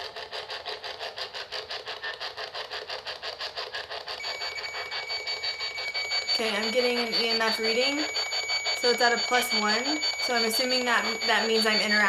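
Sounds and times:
radio static sweeping: 0:04.2 - 0:12.0
steady high tone: 0:04.2 - 0:12.0.

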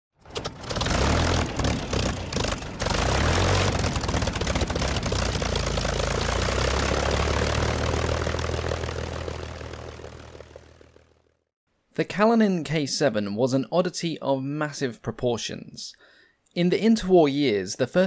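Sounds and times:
propeller aircraft engine starting: 0:00.2 - 0:11.4.

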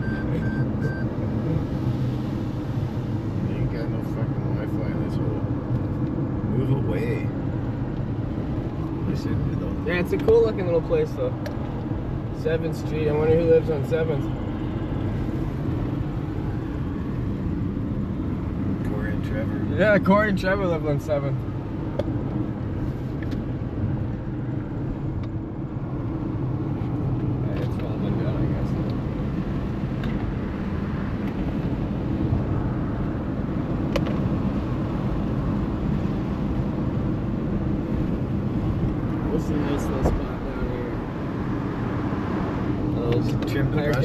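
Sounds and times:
car road and engine noise: 0:00.0 - 0:44.0.

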